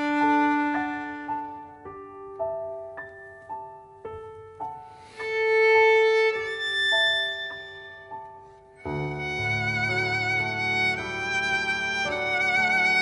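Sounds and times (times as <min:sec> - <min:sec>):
violin slow melody: 0:00.0 - 0:13.0.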